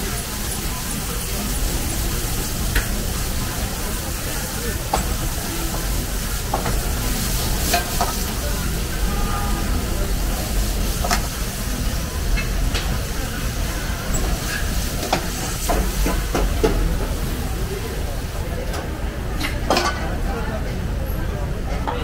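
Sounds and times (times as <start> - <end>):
food sizzling in woks: 0.0 - 18.4
gas burners roaring: 0.0 - 22.0.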